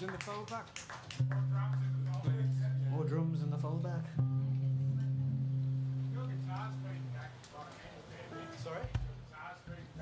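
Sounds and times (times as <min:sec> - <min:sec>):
faint low amplifier tones: 0:01.2 - 0:10.0.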